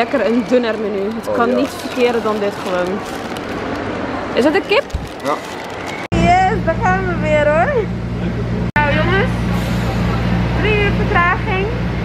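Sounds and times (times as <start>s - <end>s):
bus engine humming: 0.0s - 12.0s
person speaking: 0.9s - 3.0s.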